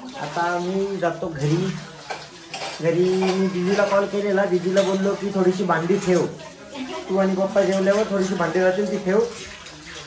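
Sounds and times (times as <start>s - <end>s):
dishes and cutlery clattering: 0.0s - 10.0s.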